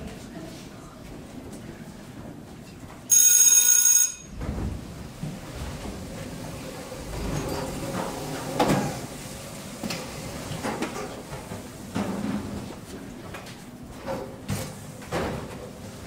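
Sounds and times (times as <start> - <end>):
loud ringing bell: 3.1 - 4.4.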